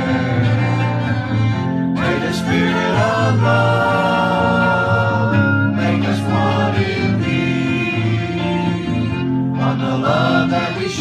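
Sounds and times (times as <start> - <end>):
acoustic guitar: 0.0 - 11.0
group singing worship song: 0.0 - 11.0
violin: 0.0 - 11.0.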